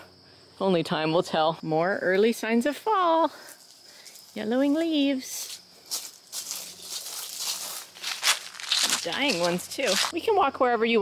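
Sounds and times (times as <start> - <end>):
footsteps on grass and dry leaves: 3.5 - 10.2.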